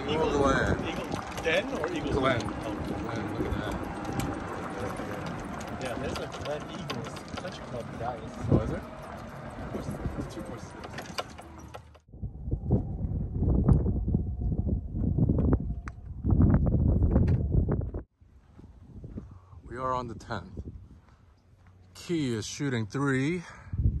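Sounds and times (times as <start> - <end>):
faint voices: 0.0 - 11.6
loud low rumble: 12.1 - 18.0.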